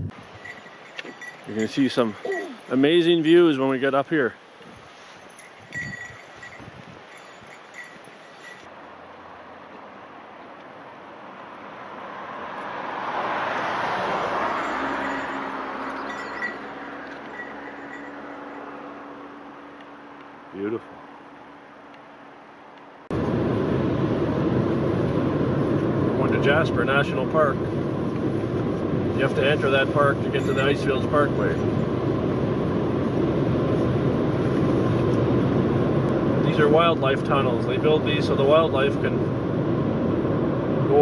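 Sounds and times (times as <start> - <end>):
road noise inside a moving car: 4.8 - 41.0
vehicle passing by: 7.7 - 41.0.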